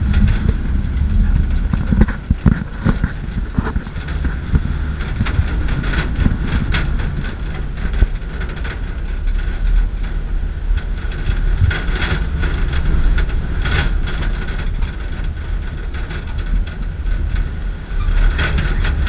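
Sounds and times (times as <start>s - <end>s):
rattling clatters: 0.0s - 19.0s
wind rushing over microphone: 0.0s - 19.0s.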